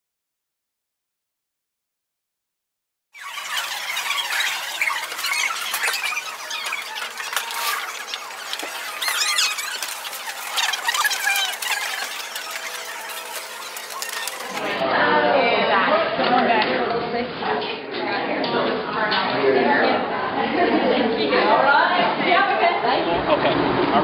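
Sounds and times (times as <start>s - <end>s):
clatter in crowded store: 3.2s - 14.8s, 15.8s - 22.6s
high-pitched squeals and squeaks: 3.2s - 14.8s.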